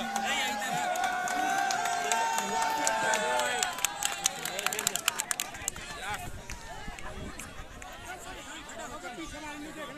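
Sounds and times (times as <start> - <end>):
scattered handclaps: 0.0 - 8.2
men's voices talking: 0.0 - 9.9.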